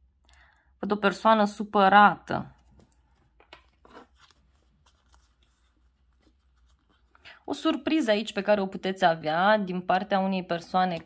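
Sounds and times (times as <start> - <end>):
paper cards tapping and rustling: 2.5 - 7.1, 10.6 - 11.0.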